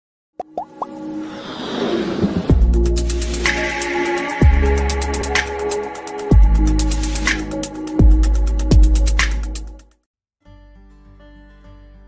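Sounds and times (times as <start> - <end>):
popping bloops rising in pitch: 0.4 - 0.9
electronic music build-up: 0.6 - 9.8.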